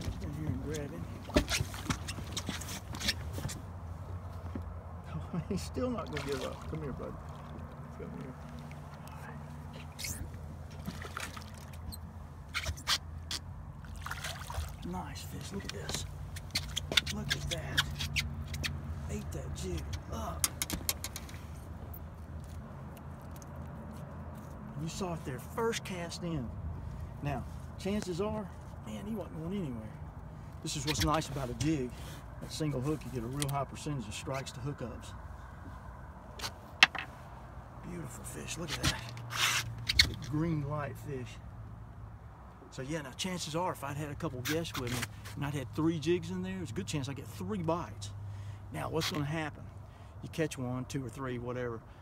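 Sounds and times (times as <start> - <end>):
fish splashing at the surface: 6.1 - 7.5, 10.8 - 11.8, 13.8 - 14.8.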